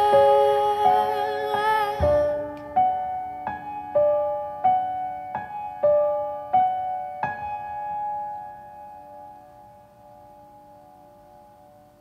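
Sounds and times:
piano notes ringing: 0:00.0 - 0:12.0.

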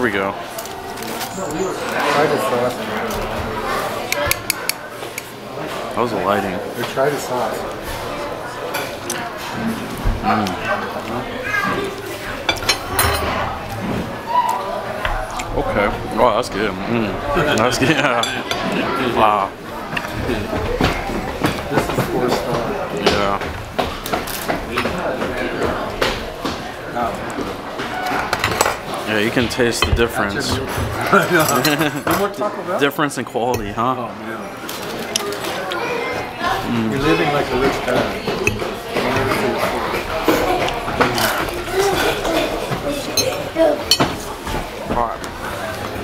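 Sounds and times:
people talking: 0:00.0 - 0:23.4, 0:28.9 - 0:46.0.

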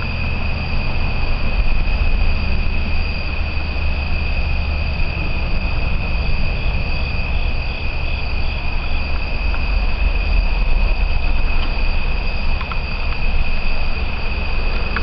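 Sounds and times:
crickets trilling: 0:00.0 - 0:15.0
low rumble: 0:00.0 - 0:15.0
pulsing insect call: 0:00.0 - 0:15.0.

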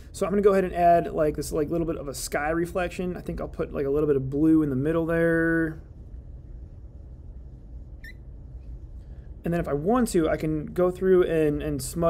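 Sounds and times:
low room hum: 0:00.0 - 0:12.0
faint high chirp: 0:08.0 - 0:08.3.

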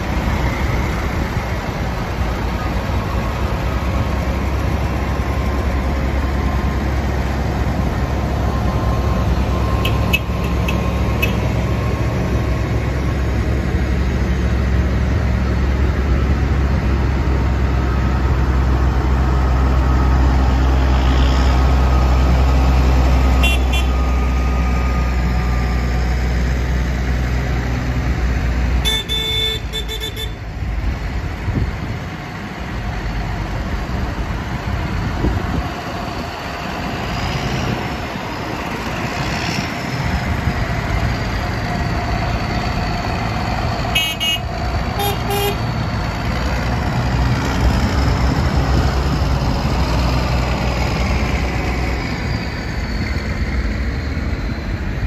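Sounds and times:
tractor diesel engines running: 0:00.0 - 0:55.0.

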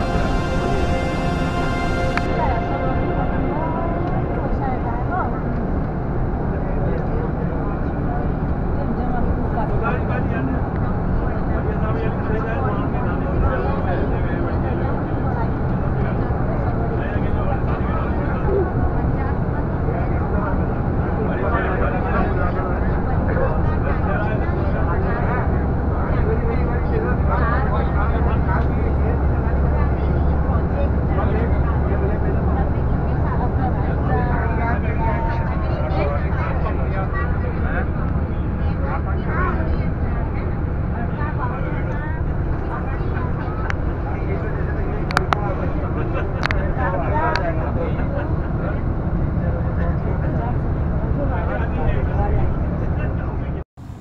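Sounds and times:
people talking indistinctly: 0:00.0 - 0:53.6
bus rumbling: 0:00.0 - 0:54.0.

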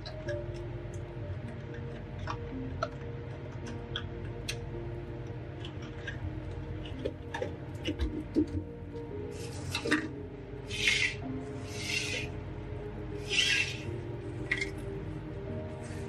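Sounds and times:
soft background music: 0:00.0 - 0:16.0.

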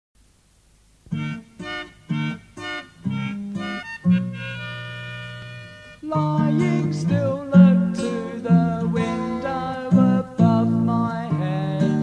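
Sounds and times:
faint hiss: 0:00.2 - 0:12.0
keyboard playing short chords: 0:01.1 - 0:09.8.

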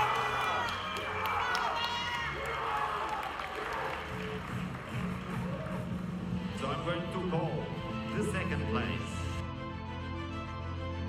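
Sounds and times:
audience cheering and shouting: 0:00.0 - 0:06.3.

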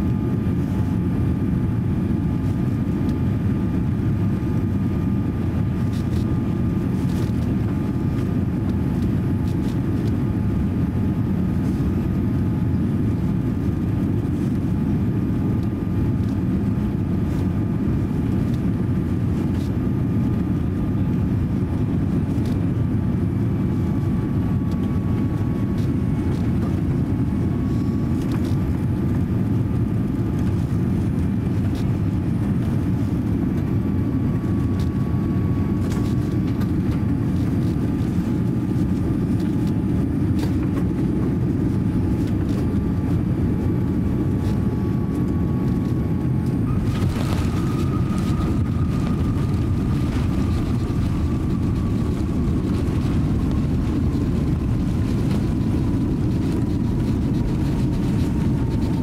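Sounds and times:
engine and airflow rush: 0:00.0 - 0:59.0.

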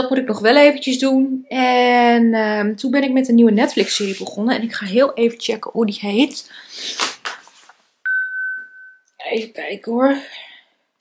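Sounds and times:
electronic ding: 0:08.1 - 0:09.1.

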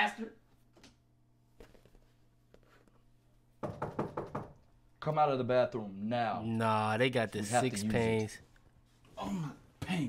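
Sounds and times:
knuckles knocking on door: 0:03.6 - 0:04.6.

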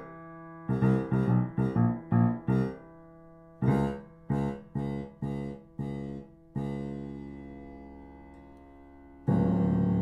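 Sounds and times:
piano chord ringing: 0:00.0 - 0:10.0.

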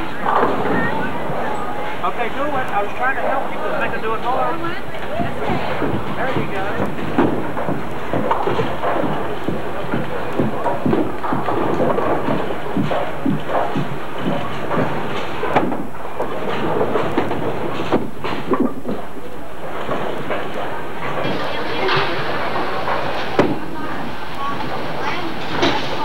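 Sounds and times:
bowling balls rolling on lanes: 0:00.0 - 0:26.0
bowling pins clattering: 0:00.0 - 0:26.0
hubbub of voices: 0:00.0 - 0:26.0.

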